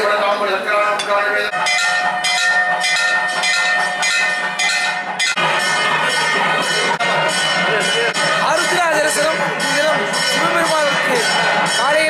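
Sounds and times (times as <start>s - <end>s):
temple bell ringing: 1.0s - 12.0s.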